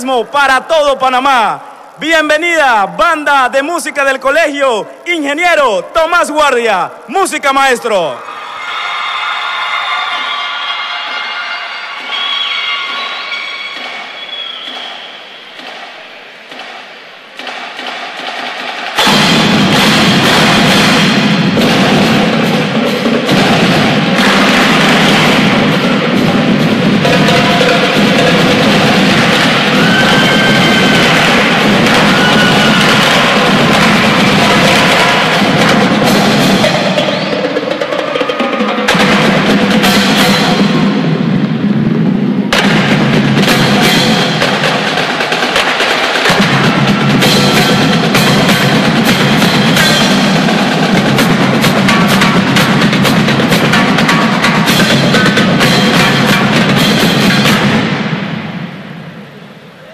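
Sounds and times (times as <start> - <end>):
drum line: 0.0 - 59.6
marching band playing: 9.0 - 59.6.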